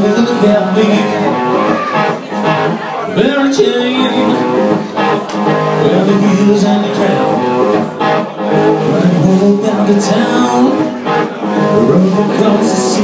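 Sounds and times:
bass guitar: 0.0 - 13.0
electric guitar: 0.0 - 13.0
man singing: 0.0 - 13.0.

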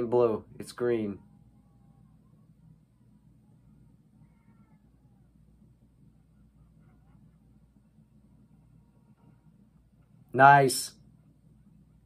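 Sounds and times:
low room hum: 0.0 - 12.0
faint high-pitched sound: 0.8 - 9.9.

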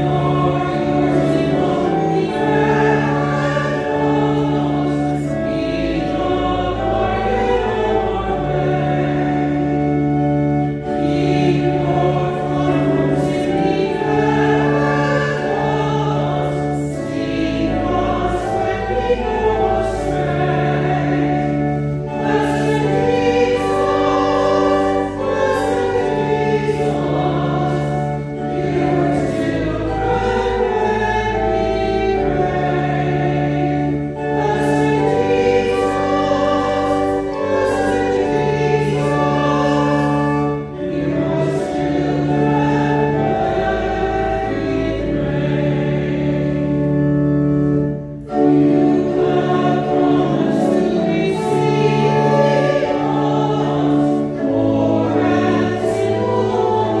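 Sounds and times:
group singing a hymn: 0.0 - 57.0
organ accompaniment: 0.0 - 57.0.

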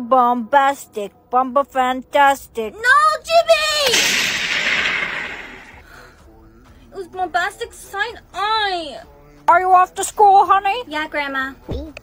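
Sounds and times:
loud blast: 3.8 - 5.9.

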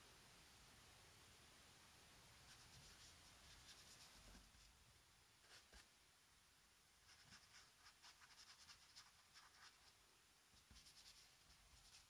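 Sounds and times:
paintbrush scratching on paper: 2.4 - 4.7, 7.0 - 10.0, 10.6 - 12.0.

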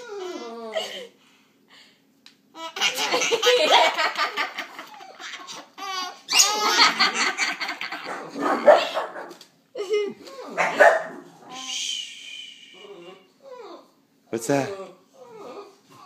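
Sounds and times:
baby laughing: 2.6 - 8.4
adult laughing: 2.8 - 8.2.

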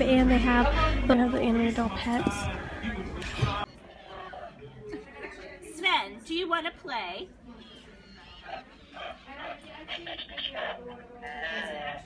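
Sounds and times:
toy playing reindeer noises: 7.6 - 12.0.

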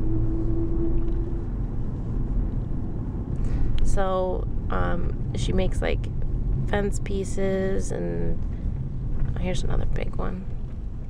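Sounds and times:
steady held tone: 0.0 - 3.0
car rumble from inside cabin: 0.0 - 11.0.

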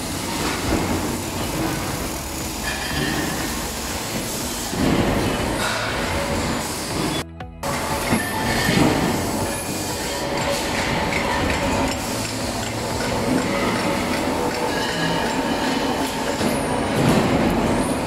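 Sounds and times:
metalworking machinery din: 0.0 - 18.0.

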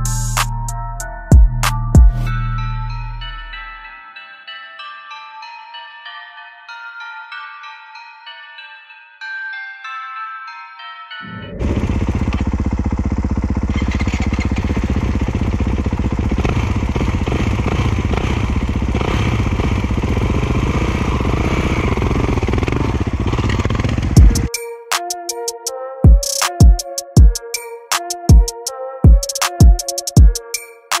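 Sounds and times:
music: 0.0 - 11.7, 24.2 - 31.0
dirt bike engine idling: 11.5 - 24.5.

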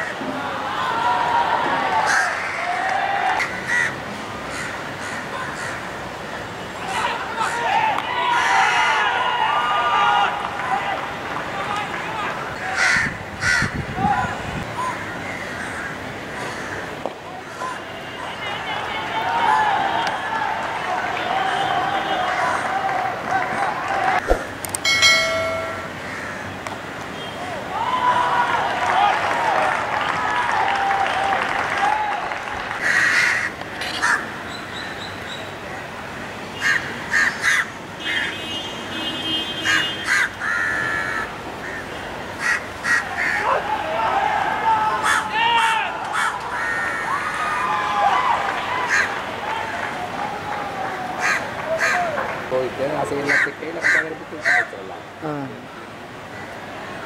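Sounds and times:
players shouting in celebration: 0.4 - 3.5, 6.9 - 12.8, 18.4 - 24.2, 27.6 - 32.5, 43.2 - 52.4
voices: 6.6 - 15.0, 17.0 - 24.3, 43.0 - 55.8
strike with metallic ringing: 24.3 - 25.9.

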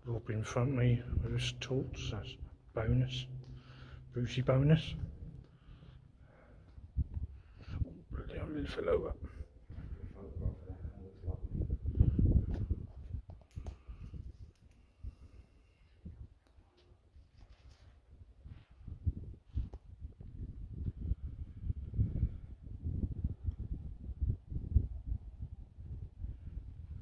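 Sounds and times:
low irregular rumbling: 0.0 - 12.9.

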